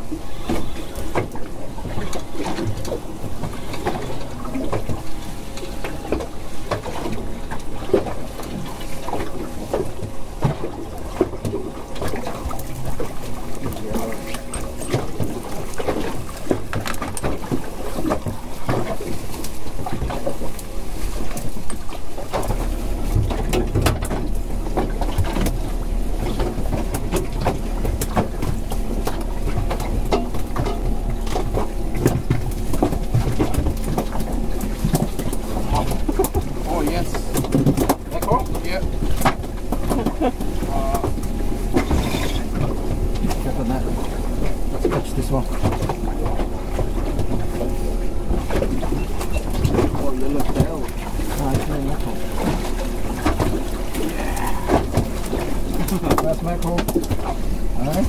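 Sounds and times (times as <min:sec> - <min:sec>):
choppy water around a boat: 0:00.0 - 0:58.0
wind: 0:00.0 - 0:58.0.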